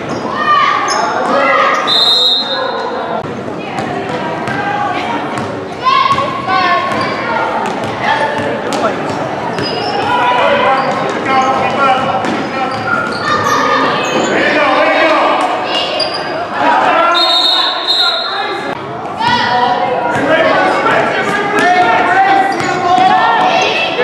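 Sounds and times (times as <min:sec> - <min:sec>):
referee's whistle: 0:01.8 - 0:02.8, 0:17.1 - 0:18.5.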